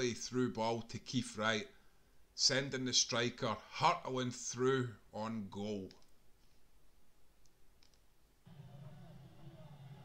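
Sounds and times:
faint low hum: 0.0 - 10.0
faint clicks: 7.4 - 8.1.

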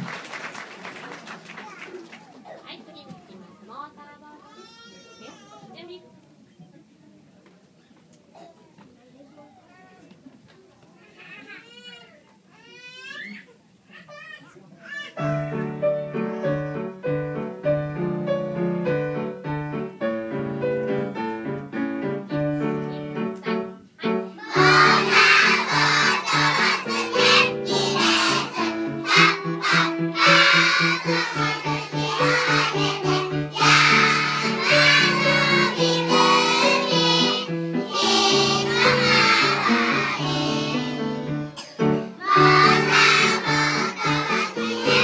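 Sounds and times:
children chattering: 1.1 - 17.0, 22.6 - 45.0
piano: 15.2 - 45.0.

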